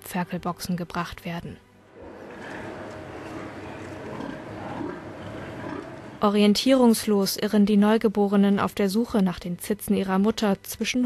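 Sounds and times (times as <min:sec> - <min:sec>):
steady background hum: 0:01.8 - 0:07.4
pigs grunting: 0:02.0 - 0:06.2.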